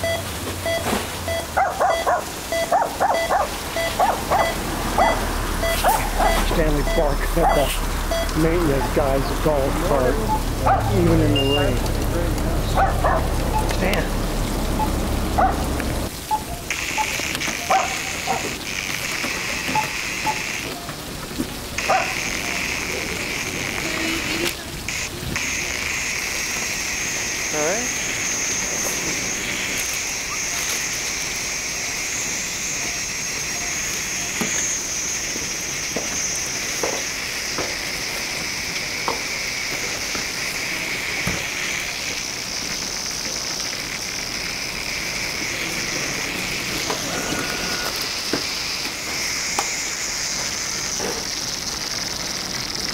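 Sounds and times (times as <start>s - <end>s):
rain hiss: 0.0s - 52.9s.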